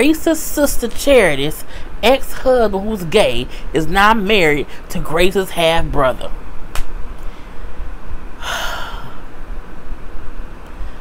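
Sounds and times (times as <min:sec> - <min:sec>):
woman breathing: 0:01.6 - 0:02.0, 0:03.5 - 0:03.8, 0:07.2 - 0:09.4.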